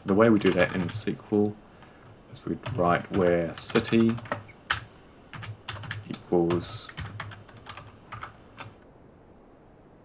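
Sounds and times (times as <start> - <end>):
computer keyboard typing: 0.3 - 1.1, 1.8 - 8.8.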